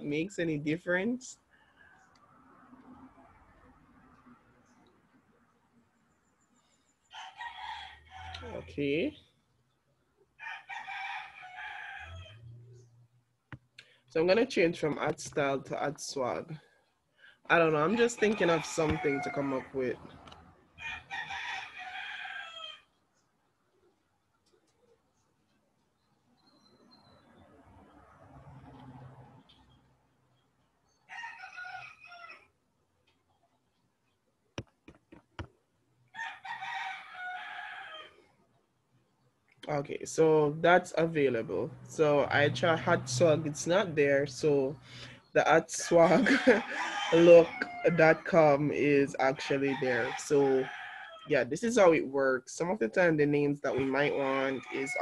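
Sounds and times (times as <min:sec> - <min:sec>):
rooster crowing: 0:07.1 - 0:08.5, 0:10.4 - 0:12.6, 0:20.8 - 0:22.9, 0:31.1 - 0:32.4, 0:36.1 - 0:38.2, 0:46.1 - 0:47.9, 0:50.0 - 0:51.3.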